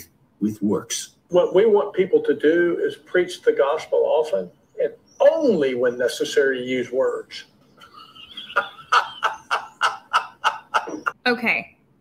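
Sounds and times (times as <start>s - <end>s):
man laughing heartily: 7.8s - 11.2s.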